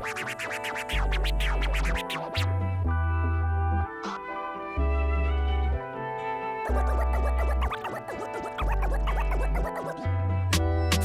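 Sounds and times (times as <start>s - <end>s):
dj scratching: 0.0s - 2.5s, 6.7s - 10.1s
hip hop beat: 0.0s - 2.7s, 6.7s - 11.0s.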